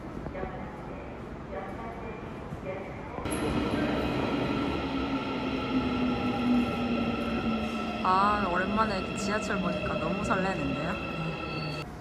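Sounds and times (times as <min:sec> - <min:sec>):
train wheels rumbling: 0:03.2 - 0:11.9.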